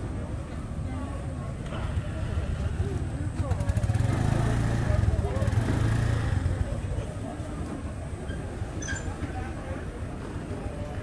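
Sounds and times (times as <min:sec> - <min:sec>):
motorbike traffic rumble: 0:00.0 - 0:11.0
people chattering: 0:00.0 - 0:11.0.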